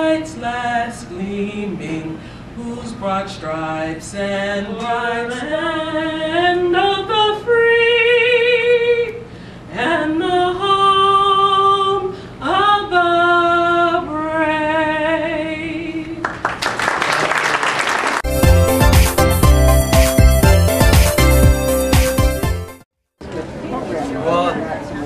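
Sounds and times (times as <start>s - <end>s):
music with steady beat: 18.2s - 22.8s.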